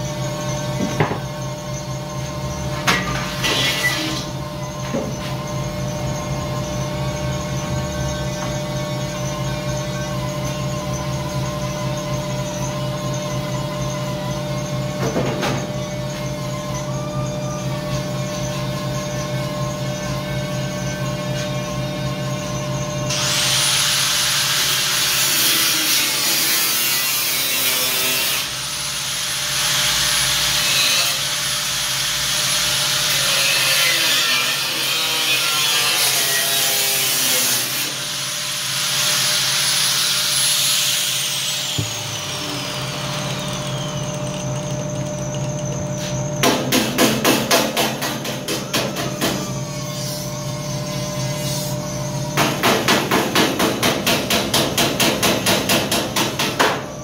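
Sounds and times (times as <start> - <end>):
angle grinder cutting steel: 3.0 - 4.4, 23.1 - 47.3.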